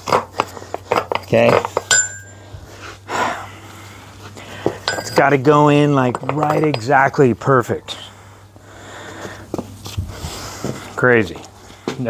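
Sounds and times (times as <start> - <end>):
metallic clink: 1.8 - 2.5, 4.8 - 5.5
man breathing out through nose: 8.1 - 11.0.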